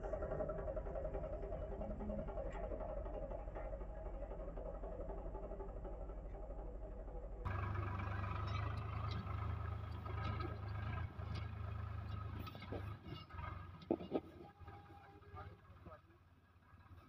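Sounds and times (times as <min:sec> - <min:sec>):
tractor diesel engine under load: 0:00.0 - 0:17.0.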